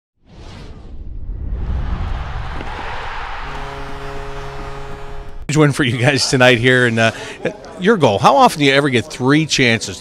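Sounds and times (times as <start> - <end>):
whooshes: 0.2 - 4.7
low rumble: 0.3 - 5.5.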